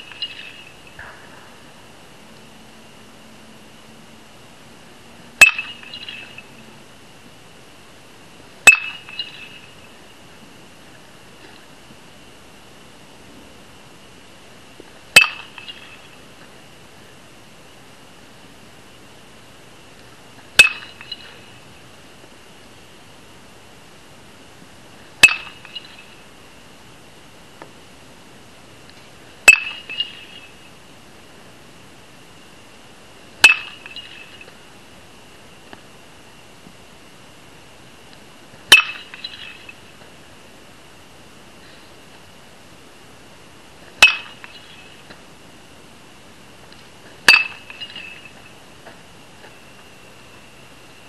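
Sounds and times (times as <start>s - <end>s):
metal bat hitting ball: 5.4s - 6.2s, 8.7s - 9.3s, 15.2s - 15.8s, 20.6s - 21.1s, 25.2s - 25.8s, 29.5s - 30.2s, 33.4s - 34.1s, 38.7s - 39.4s, 44.0s - 44.6s, 47.3s - 48.2s.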